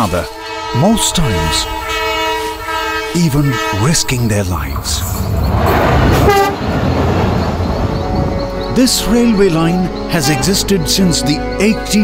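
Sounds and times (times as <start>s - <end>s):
train horn toot: 0.0s - 4.3s, 6.2s - 6.8s, 10.1s - 10.8s
train rumbling along track: 0.0s - 12.0s.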